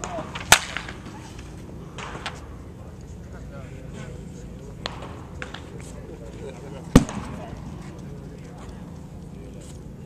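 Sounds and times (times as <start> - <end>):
wooden bat hitting ball: 0.0 - 1.0.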